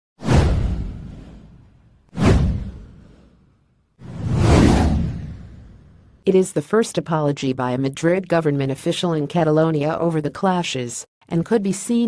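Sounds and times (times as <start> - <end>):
whoosh with deep rumble: 0.2 - 6.2.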